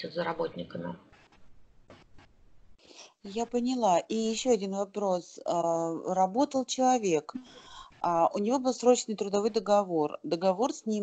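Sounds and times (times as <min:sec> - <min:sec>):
faint scratching: 0:00.0 - 0:05.2.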